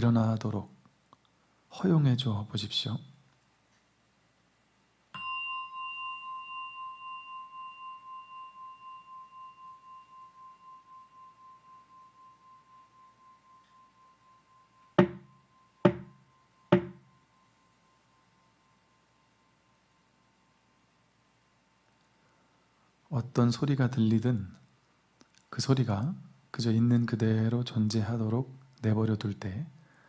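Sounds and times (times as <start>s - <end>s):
singing bowl ringing: 5.1s - 20.8s
sharp knocks: 15.0s - 16.1s, 16.7s - 17.0s.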